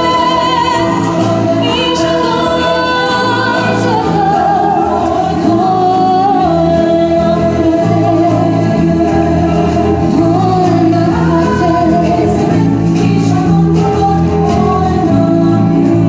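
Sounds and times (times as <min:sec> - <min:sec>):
instrumental accompaniment: 0:00.0 - 0:16.0
woman singing with vibrato: 0:00.0 - 0:16.0.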